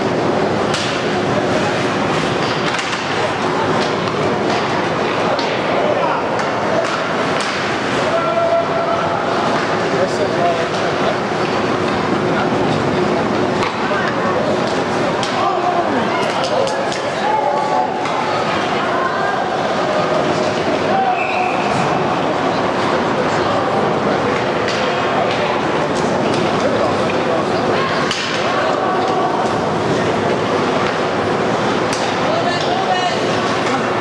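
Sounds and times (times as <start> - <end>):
crowd noise: 0.0 - 34.0
murmur from the stands: 0.0 - 34.0.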